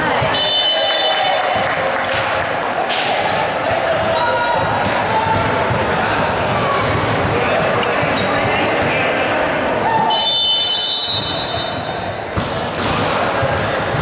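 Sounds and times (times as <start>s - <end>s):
indistinct echoing voices: 0.0s - 14.0s.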